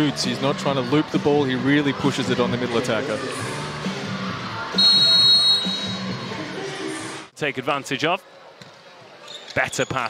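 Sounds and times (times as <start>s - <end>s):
arena background music: 0.0s - 7.3s
referee's whistle blast: 4.7s - 6.1s.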